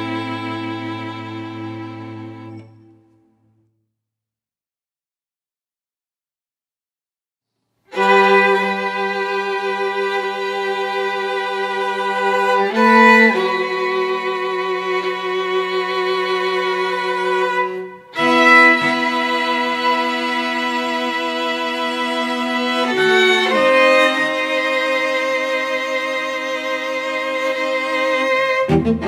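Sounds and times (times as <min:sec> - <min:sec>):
string quartet bowed chords: 0:00.0 - 0:03.4, 0:07.9 - 0:29.0.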